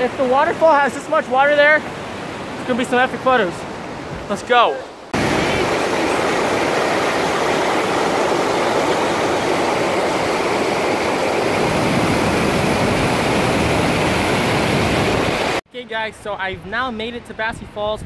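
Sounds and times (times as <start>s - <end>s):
water rushing over boulders: 0.0s - 15.6s.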